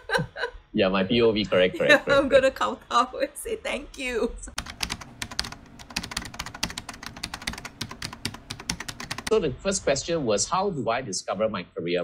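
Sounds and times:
rapid keyboard typing: 4.6s - 9.3s.

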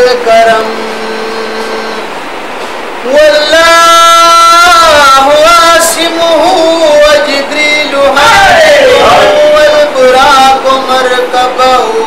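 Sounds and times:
steady hiss: 0.0s - 12.0s
man chanting one note: 8.1s - 10.0s.

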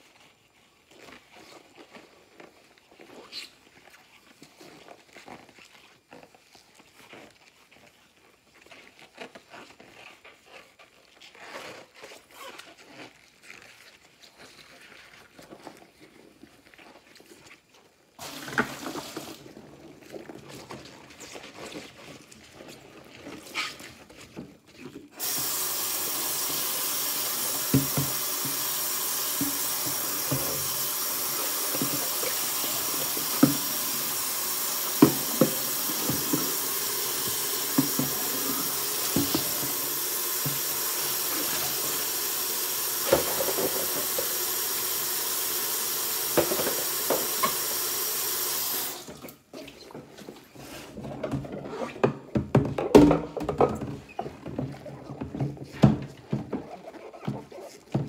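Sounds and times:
faucet running into steel sink: 25.2s - 49.3s.

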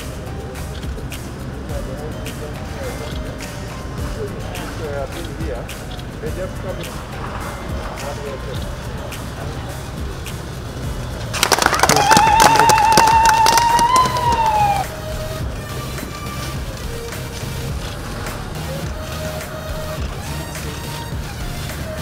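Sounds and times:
background music: 0.0s - 22.0s
high wavering ululation: 0.0s - 22.0s
crowd clapping: 9.1s - 22.0s.

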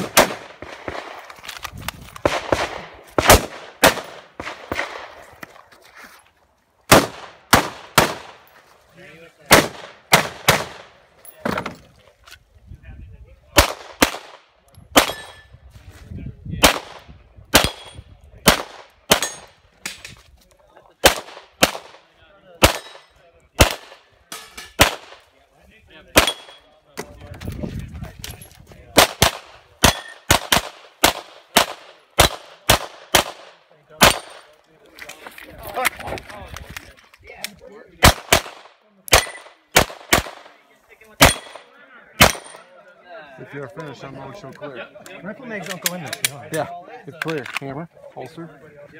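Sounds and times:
rapid gunshots: 29.0s - 34.3s.

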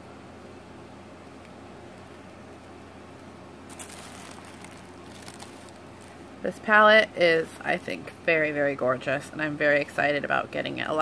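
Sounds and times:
room hum: 0.0s - 11.0s
hands rustling tissue paper: 3.7s - 6.8s.

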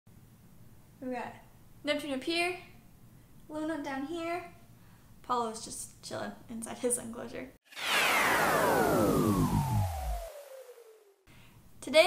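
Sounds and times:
falling pitch sweep: 7.7s - 11.2s.

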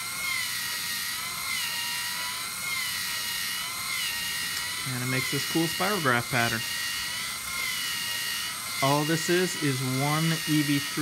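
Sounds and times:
toy motors whining: 0.0s - 11.0s.

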